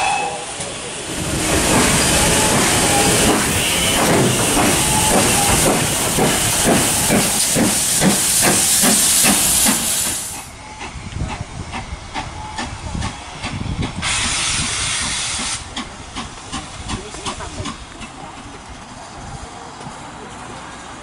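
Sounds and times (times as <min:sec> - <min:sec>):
steam hissing: 0:00.0 - 0:11.0, 0:11.6 - 0:17.8.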